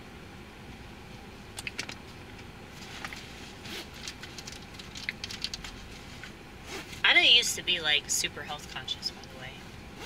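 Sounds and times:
low car interior hum: 0:00.0 - 0:10.0
handling clicks and rustles: 0:01.5 - 0:07.0.

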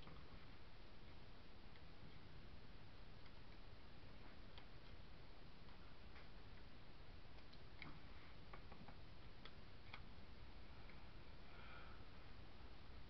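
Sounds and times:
steady low hiss: 0:00.0 - 0:13.0
small clicks and taps: 0:07.3 - 0:10.1.

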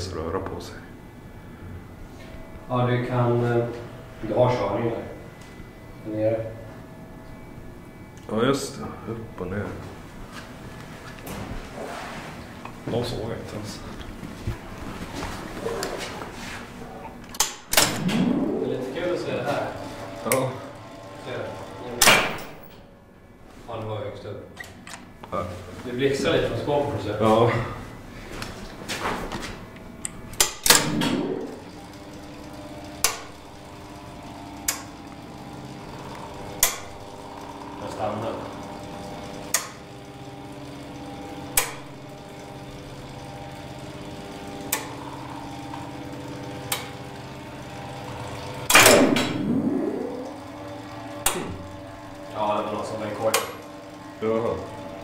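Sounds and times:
faint machine hum: 0:00.0 - 0:55.0
relay contacts clicking: 0:29.8 - 0:54.7.

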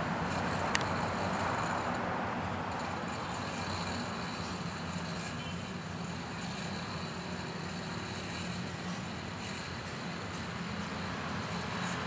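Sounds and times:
low engine hum: 0:00.0 - 0:12.0
outdoor background noise: 0:00.0 - 0:12.0.

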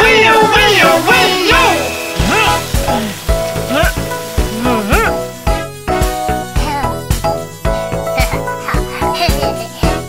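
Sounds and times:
children's background music: 0:00.0 - 0:10.0
water spraying from hose: 0:00.0 - 0:10.0.

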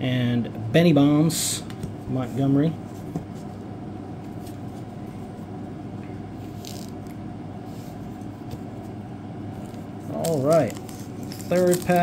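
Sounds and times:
low room hum: 0:00.0 - 0:12.0
trading cards rustling: 0:09.6 - 0:12.0.

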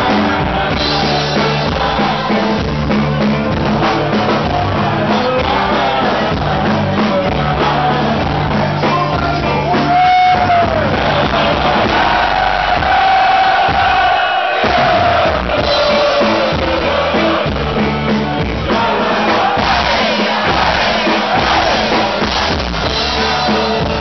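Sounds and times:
crowd singing and shouting along: 0:00.0 - 0:24.0
live party band music: 0:00.0 - 0:24.0.

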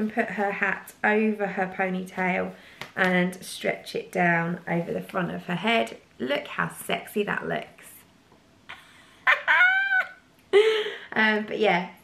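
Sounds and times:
woman's high-pitched squeal: 0:09.3 - 0:10.2.

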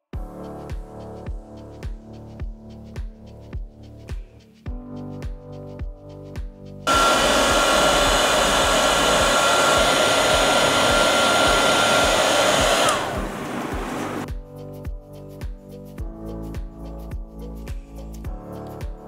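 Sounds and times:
heat gun switch: 0:06.9 - 0:14.2
heat gun hissing and whining: 0:06.9 - 0:14.3.

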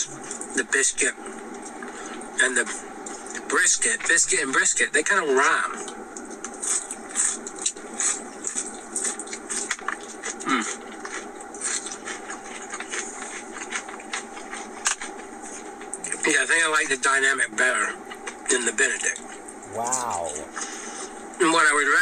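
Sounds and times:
crackling eating noises: 0:00.0 - 0:22.0
steady low hum: 0:19.4 - 0:21.4.

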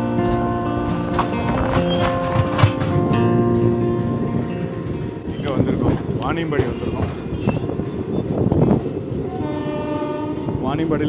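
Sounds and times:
moving train rumble: 0:00.0 - 0:11.0
train horn: 0:09.1 - 0:10.8.

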